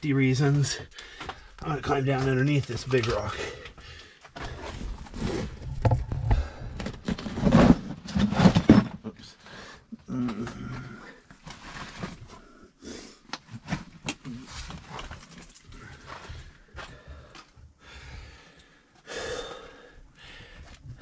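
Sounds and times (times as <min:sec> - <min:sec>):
person breathing hard: 0:00.9 - 0:01.6, 0:03.5 - 0:04.8, 0:16.0 - 0:21.0
scrapes and knocks against rock: 0:01.2 - 0:09.1, 0:10.2 - 0:12.6.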